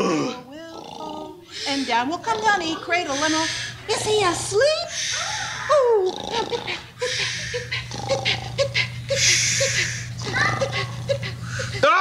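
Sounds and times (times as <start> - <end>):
person imitating snoring: 0.0 - 3.4, 5.8 - 6.8, 7.8 - 11.2.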